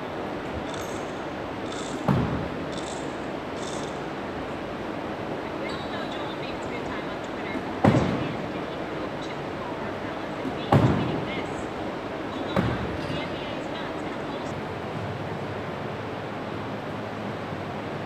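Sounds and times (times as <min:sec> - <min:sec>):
gym room noise: 0:00.0 - 0:08.6.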